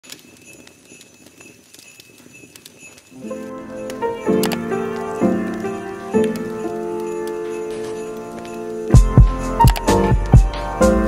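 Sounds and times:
crackling hiss: 0.0 - 11.0
sharp clicks: 3.9 - 5.1, 9.6 - 10.4.

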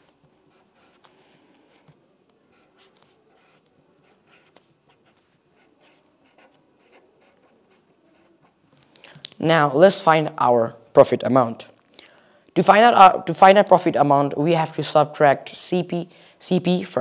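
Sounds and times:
pen scratching on paper: 0.4 - 1.1, 1.7 - 8.6.

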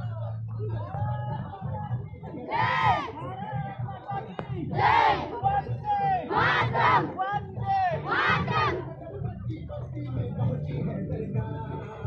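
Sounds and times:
group shouting slogans: 2.4 - 3.2, 4.7 - 5.4, 6.2 - 7.2, 8.0 - 8.8.

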